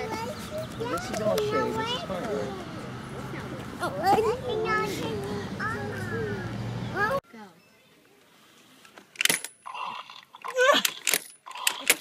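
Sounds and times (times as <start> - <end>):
toy mechanical whirring: 10.4 - 12.0.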